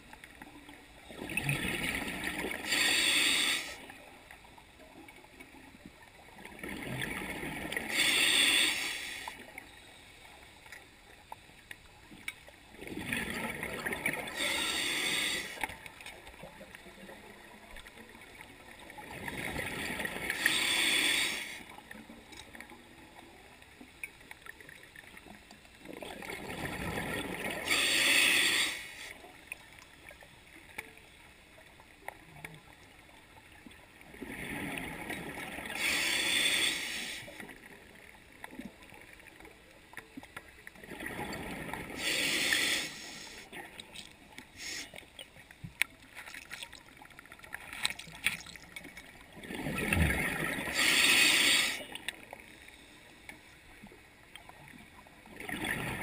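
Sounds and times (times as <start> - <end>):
diver breathing through regulator: 2.5 - 3.8, 7.8 - 9.4, 14.2 - 15.7, 20.2 - 21.7, 27.5 - 29.2, 35.6 - 37.4, 41.8 - 43.5, 44.5 - 45.1, 50.6 - 52.0
faint clicks: 9.2 - 12.6, 21.5 - 22.8, 23.6 - 26.0, 28.8 - 31.2, 43.4 - 49.2.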